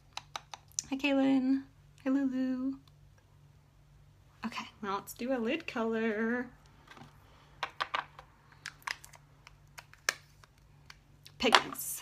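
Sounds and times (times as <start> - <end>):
faint steady hum: 0.0 - 12.0
makeup containers clicking: 0.1 - 0.7.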